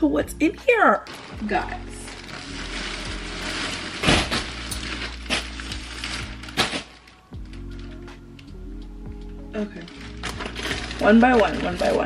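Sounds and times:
background music: 0.0 - 12.0
plastic mailer bag crinkling: 0.9 - 8.5, 9.6 - 12.0.

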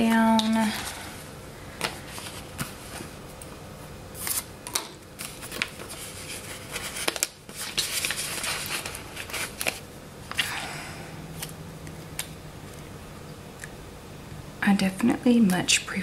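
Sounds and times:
paper rustling and crinkling: 1.8 - 3.2, 4.2 - 4.5, 5.2 - 9.9.

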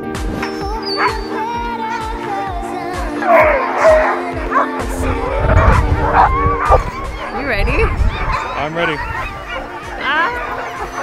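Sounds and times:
sled dogs yelping and howling: 0.8 - 2.2, 3.1 - 11.0.

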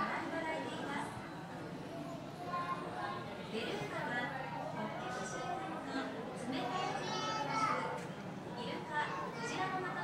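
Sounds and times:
people chattering: 0.0 - 10.0
children's voices: 2.0 - 3.3, 6.5 - 8.1, 8.8 - 10.0.

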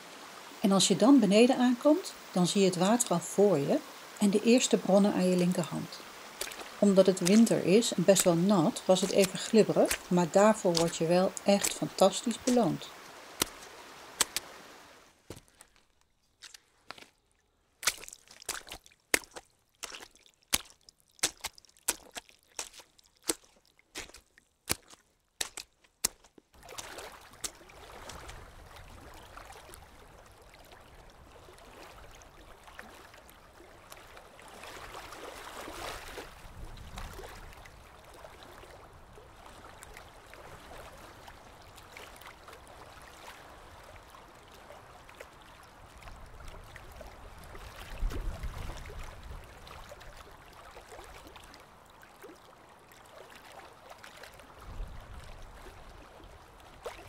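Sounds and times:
water rushing over stones: 0.0 - 17.1, 17.8 - 51.8
footsteps on leaf litter: 6.3 - 14.6, 17.8 - 28.3.

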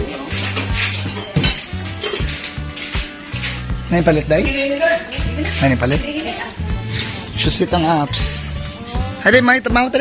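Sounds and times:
plates and cutlery clinking: 0.0 - 9.1
background music with bass line: 0.0 - 10.0.

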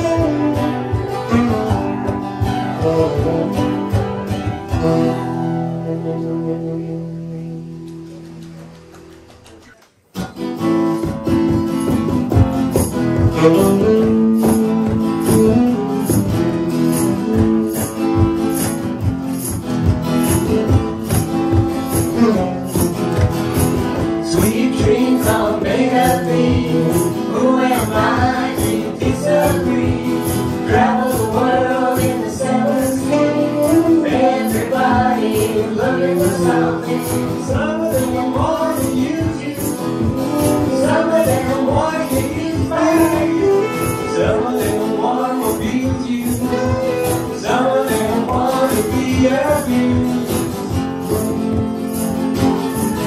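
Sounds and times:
live band music: 0.0 - 53.0.

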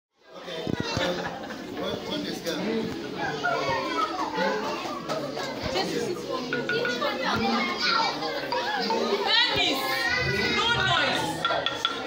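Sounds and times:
children and adults chattering: 0.2 - 12.0.

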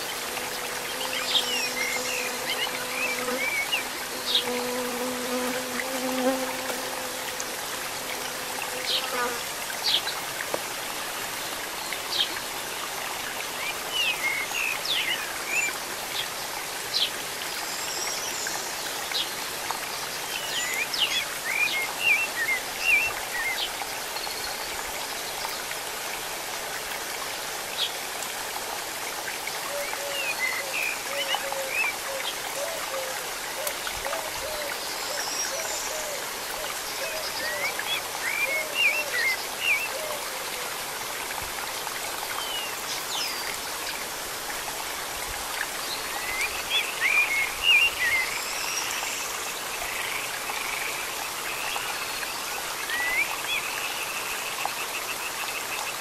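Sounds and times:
stream trickling over rocks: 0.0 - 56.0.

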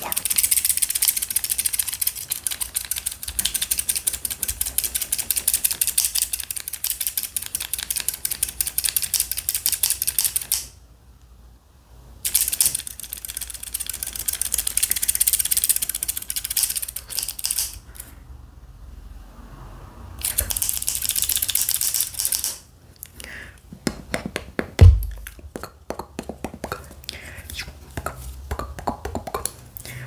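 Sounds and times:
scissors snipping rapidly: 0.0 - 10.7.

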